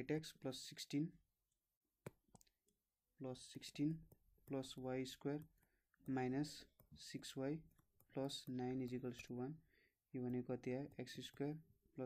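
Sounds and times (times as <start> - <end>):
person speaking: 3.2 - 12.0.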